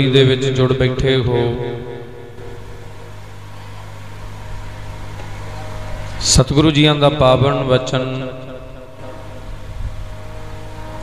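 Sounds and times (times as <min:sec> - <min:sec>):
low electrical hum: 0:00.0 - 0:11.0
steady hiss: 0:01.8 - 0:08.0.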